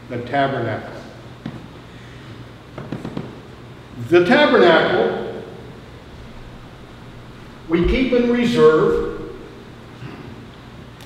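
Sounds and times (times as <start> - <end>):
low hum: 5.5 - 10.3.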